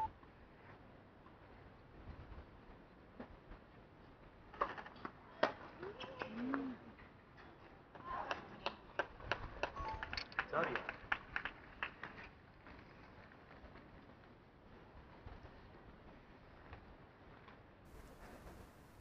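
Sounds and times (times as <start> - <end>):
quick sharp claps: 8.3 - 12.3.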